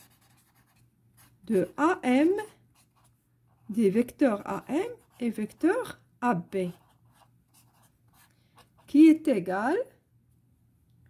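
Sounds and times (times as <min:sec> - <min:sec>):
pen scratching on paper: 0:00.0 - 0:05.8, 0:06.6 - 0:09.0.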